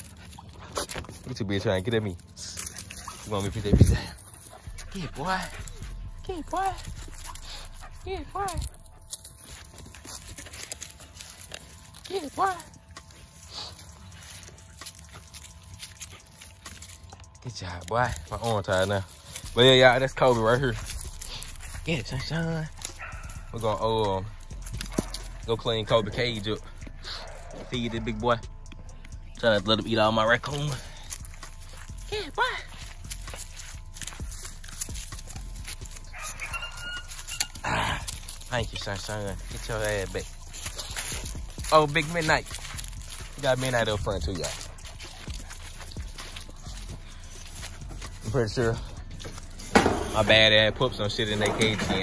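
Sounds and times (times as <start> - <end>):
dog scuffling in dry leaves: 0.0 - 27.9, 29.4 - 52.0
dog whining: 36.0 - 38.1.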